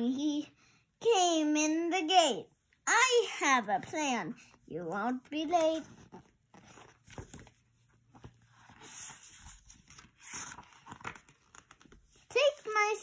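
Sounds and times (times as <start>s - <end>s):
soft paper rustles: 4.8s - 13.0s.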